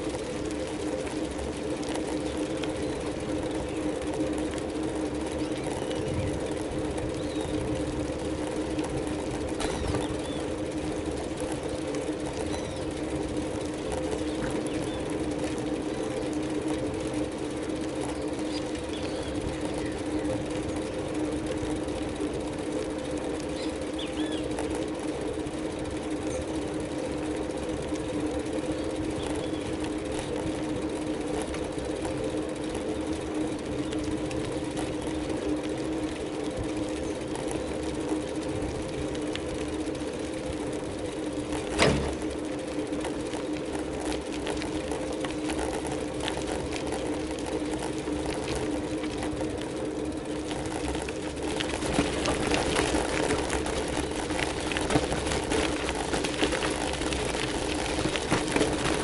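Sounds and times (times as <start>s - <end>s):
bicycle rolling on asphalt: 0.0s - 59.0s.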